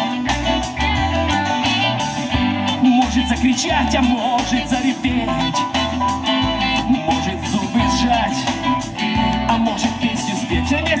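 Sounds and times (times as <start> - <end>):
electric lead guitar: 0.0 - 11.0
keyboards: 0.0 - 11.0
low bass notes: 0.0 - 11.0.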